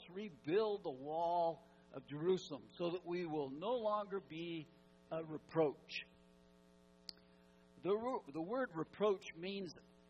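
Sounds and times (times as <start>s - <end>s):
man speaking: 0.0s - 6.2s, 7.8s - 9.8s
low electrical hum: 0.0s - 10.0s
faint click: 7.0s - 7.3s.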